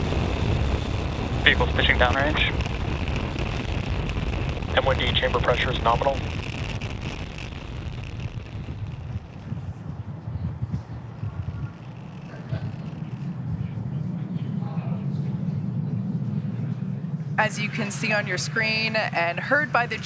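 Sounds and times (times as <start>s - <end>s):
rocket engines rumbling: 0.0s - 20.0s
faint voices: 1.4s - 7.6s, 8.4s - 20.0s.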